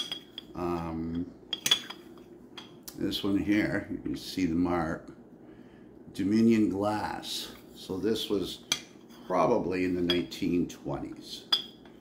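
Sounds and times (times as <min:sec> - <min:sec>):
glass bottles clinking: 0:00.0 - 0:02.8, 0:11.4 - 0:12.0.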